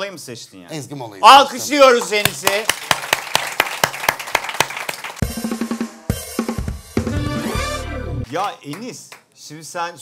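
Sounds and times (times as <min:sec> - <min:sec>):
snare and cymbal hits: 0:05.2 - 0:07.7.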